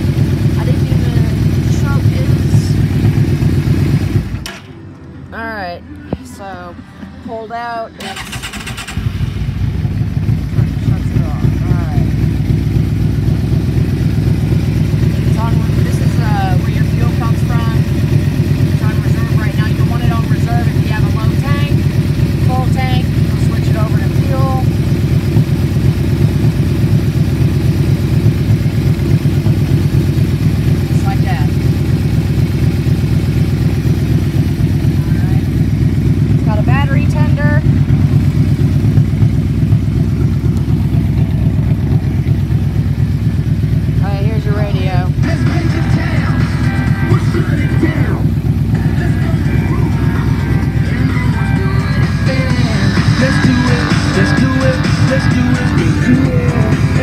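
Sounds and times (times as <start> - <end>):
motorcycle engine starting and idling: 0.0 - 57.0.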